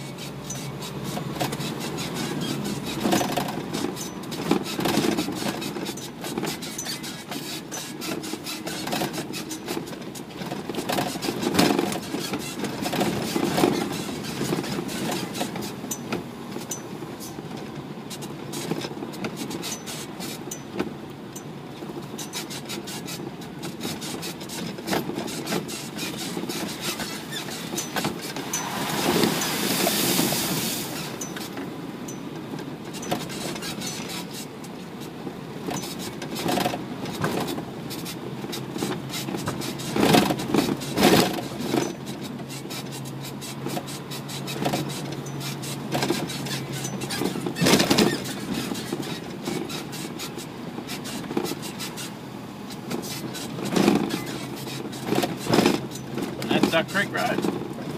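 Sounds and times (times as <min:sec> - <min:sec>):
body knocking and clattering: 0:00.0 - 0:29.4, 0:30.9 - 0:57.9
diesel truck engine running: 0:00.0 - 0:57.9
road noise: 0:00.0 - 0:57.9
loud rush: 0:28.4 - 0:31.1.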